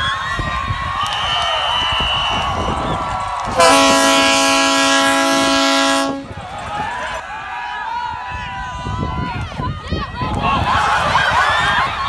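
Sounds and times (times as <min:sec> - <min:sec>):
horn sounding a loud chord: 0:03.6 - 0:06.3.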